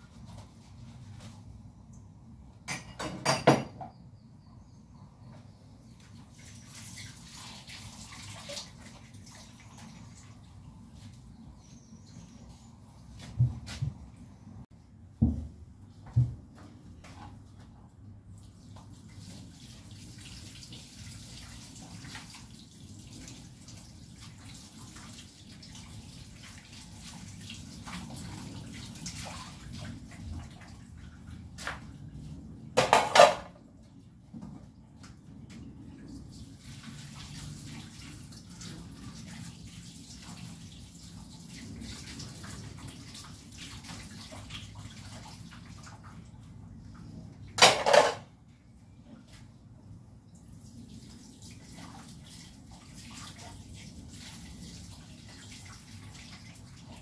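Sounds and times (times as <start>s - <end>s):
loud dish clanks: 2.7s - 4.0s, 32.8s - 33.6s, 47.6s - 48.3s
water running: 5.9s - 12.4s, 18.3s - 33.4s
plates and cutlery clinking: 47.6s - 48.3s.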